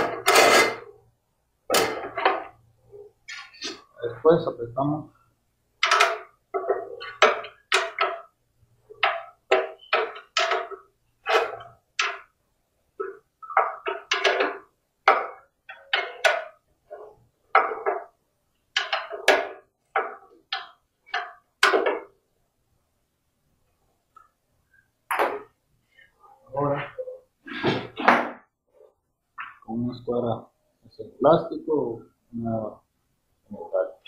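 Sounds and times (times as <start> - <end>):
wrench knocking and clicking on metal: 5.8 - 8.3, 9.0 - 12.4, 13.0 - 16.6, 17.5 - 22.1.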